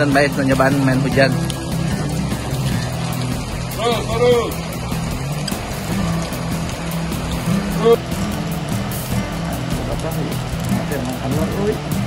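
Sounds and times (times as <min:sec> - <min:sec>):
car engine idling: 0:00.0 - 0:12.0
rain hissing on wet pavement: 0:00.0 - 0:12.0.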